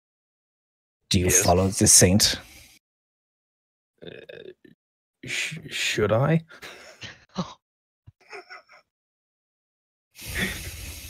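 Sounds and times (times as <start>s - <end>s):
man saying uh: 1.1s - 2.4s.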